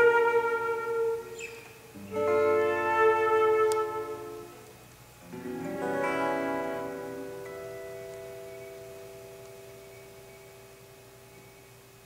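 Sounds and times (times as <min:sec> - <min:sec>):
flute and acoustic guitar: 0:00.0 - 0:04.7, 0:05.3 - 0:11.8.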